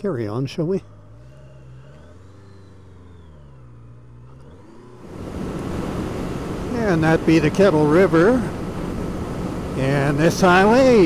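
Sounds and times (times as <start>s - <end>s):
motorcycle engine accelerating: 0.0s - 11.0s
wind noise rushing: 5.0s - 11.0s.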